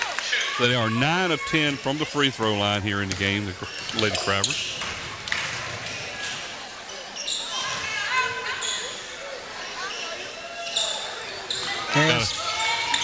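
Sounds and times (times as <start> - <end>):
crowd voices: 0.0 - 13.0
sneaker squeaks: 3.2 - 13.0.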